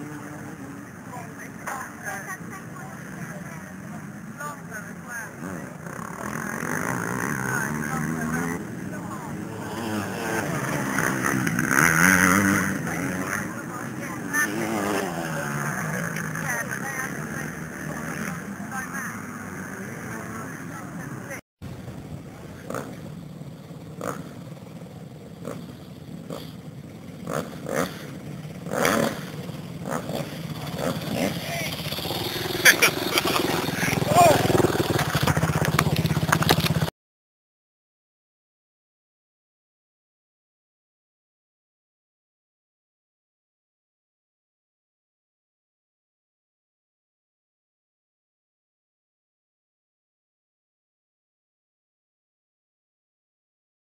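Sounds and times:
people talking: 0.0 - 21.4, 30.5 - 36.4
motocross bike engines revving: 0.0 - 36.9.

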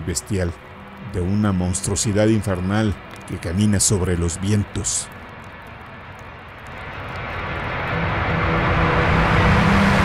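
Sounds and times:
ambient music: 0.0 - 10.0
low droning hum: 0.0 - 10.0
rushing wind-like noise: 0.0 - 10.0.

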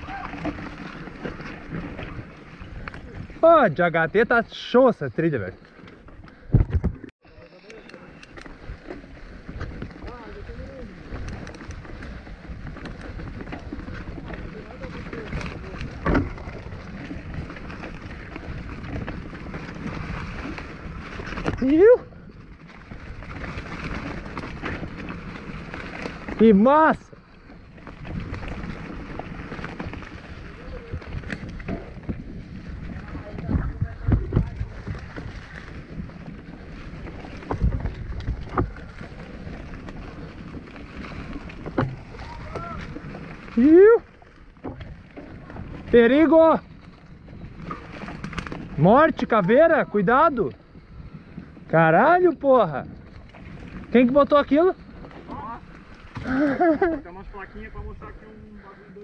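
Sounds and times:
bike rattling over dirt trail: 0.0 - 59.0.

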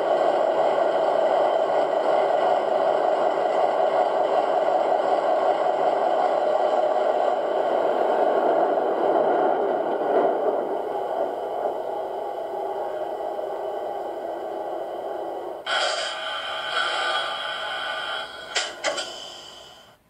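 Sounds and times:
model train diesel engine sound: 0.0 - 20.0.

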